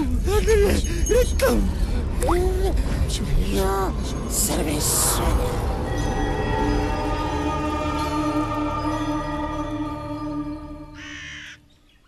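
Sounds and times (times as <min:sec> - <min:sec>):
eerie held soundtrack tones: 0:00.0 - 0:11.2
harsh bird call: 0:11.0 - 0:11.6.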